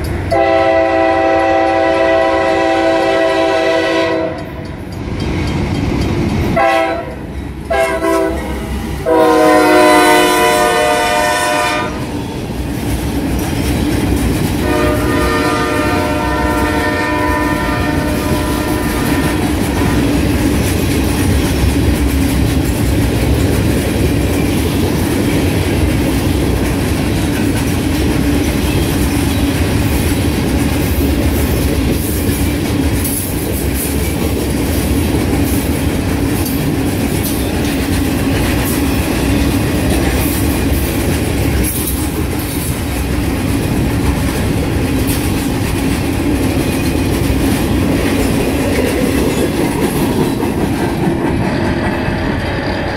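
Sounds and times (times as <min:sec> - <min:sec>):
train wheels clacking over rails: 0:00.0 - 0:02.5, 0:03.2 - 0:52.9.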